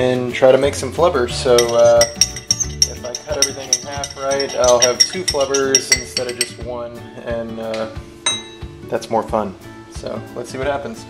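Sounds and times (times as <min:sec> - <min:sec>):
spoon clinking against glass: 0:01.6 - 0:06.6, 0:08.3 - 0:08.7.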